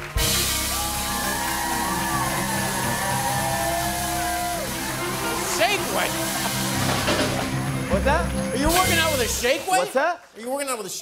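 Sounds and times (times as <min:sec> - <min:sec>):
audience whooping: 0:00.0 - 0:09.5
live band music: 0:00.0 - 0:10.0.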